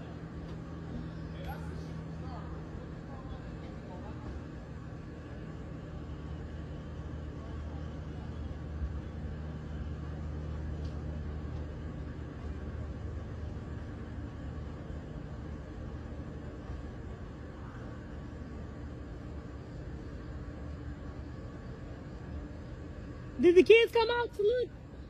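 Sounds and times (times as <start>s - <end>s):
low mechanical drone: 0.0s - 25.0s
noisy rumble: 0.0s - 25.0s.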